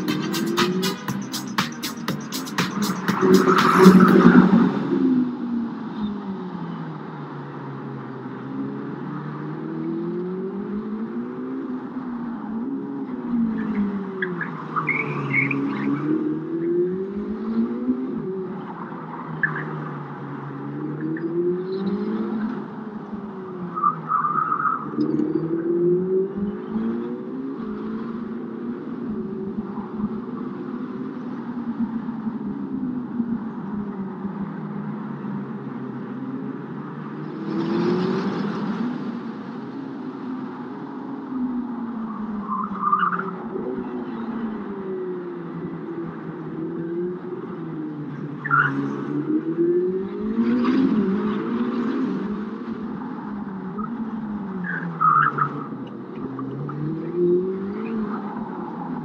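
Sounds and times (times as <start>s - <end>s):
car engine revving: 0.0s - 6.7s, 35.9s - 40.4s.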